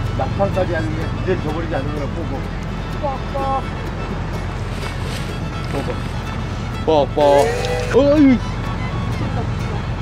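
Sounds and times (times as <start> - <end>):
wind and surf rumble: 0.0 - 10.0.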